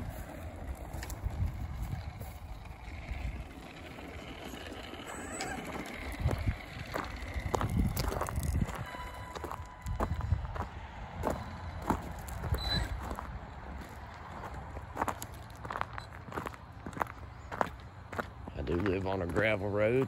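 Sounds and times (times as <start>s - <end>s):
electric motor whining: 0.0s - 13.8s
footsteps on gravel: 0.0s - 20.0s
tyres crunching over gravel: 0.0s - 20.0s.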